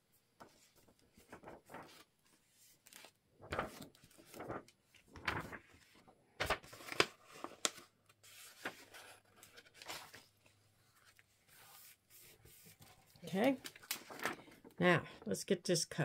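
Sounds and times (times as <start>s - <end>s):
paper rustling and crackling: 0.4s - 14.8s.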